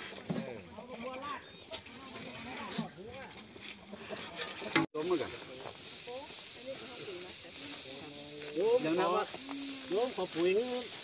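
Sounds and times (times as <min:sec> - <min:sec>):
hoes and shovels scraping soil: 0:00.0 - 0:11.0
people talking indistinctly: 0:04.2 - 0:11.0.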